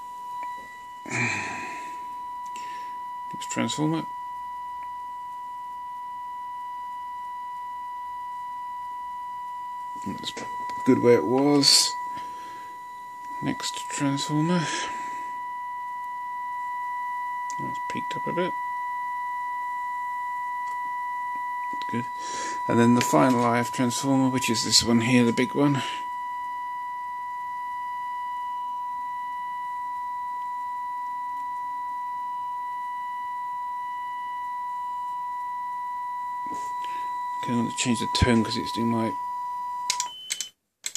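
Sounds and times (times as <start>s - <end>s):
steady test tone from loudspeaker: 0.0s - 40.2s.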